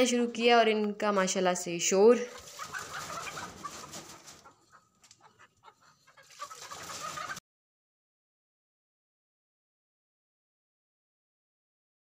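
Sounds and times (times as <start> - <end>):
hens clucking: 2.2 - 7.4.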